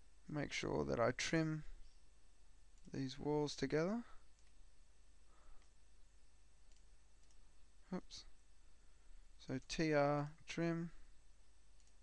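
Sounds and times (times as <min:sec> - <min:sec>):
computer mouse clicks: 0:02.7 - 0:03.0, 0:04.3 - 0:04.6, 0:05.5 - 0:05.8, 0:06.6 - 0:07.5, 0:11.7 - 0:12.0.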